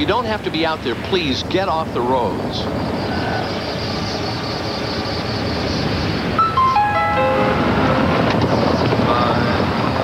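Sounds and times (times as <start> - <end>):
wind: 0.0 - 10.0.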